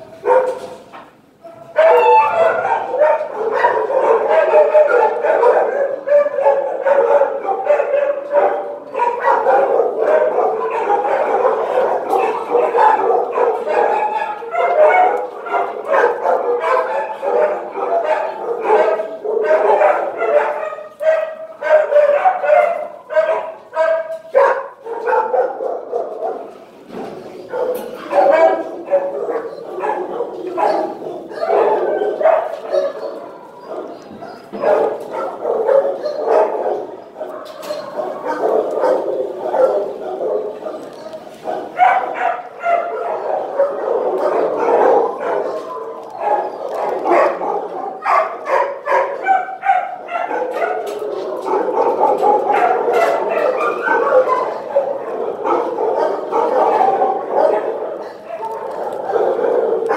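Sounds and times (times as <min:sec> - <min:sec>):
many dogs barking: 0:00.0 - 0:59.9.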